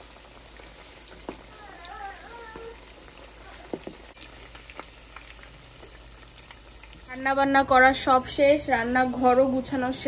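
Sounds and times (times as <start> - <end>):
small crackles: 0.0 - 7.2
food sizzling in oil: 0.0 - 8.0.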